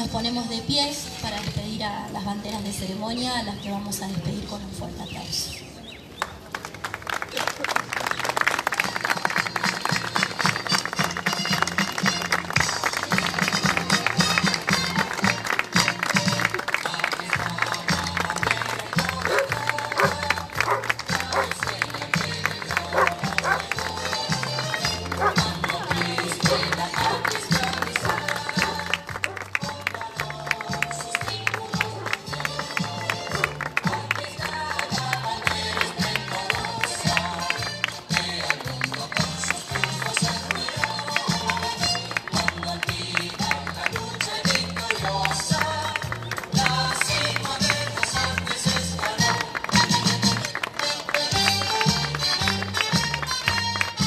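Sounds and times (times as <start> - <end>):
crowd clapping: 6.2 - 54.0
march-like music: 9.3 - 54.0.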